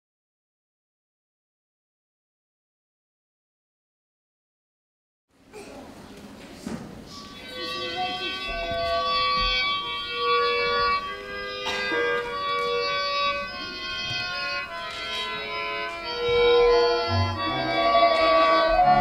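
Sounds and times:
folk dance music: 6.8 - 19.0.

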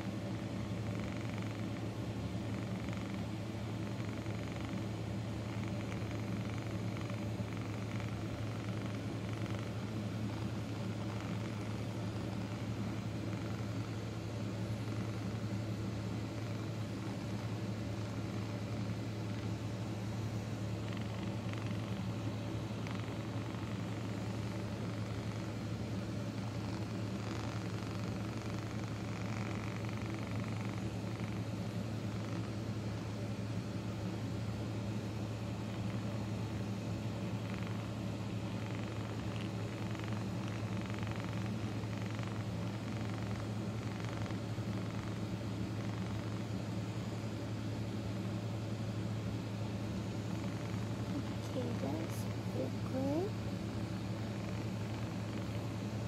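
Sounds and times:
massage gun buzzing: 0.0 - 56.0.

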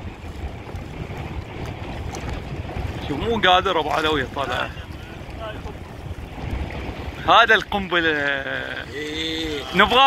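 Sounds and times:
sea water: 0.0 - 10.0
wind buffeting microphone: 0.0 - 10.0.

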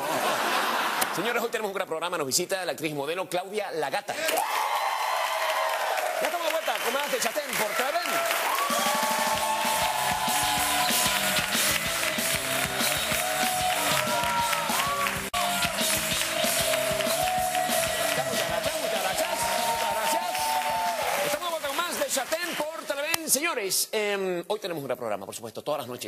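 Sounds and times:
audience clapping and cheering: 4.2 - 23.5
music with rhythmic bass line: 9.2 - 19.9.

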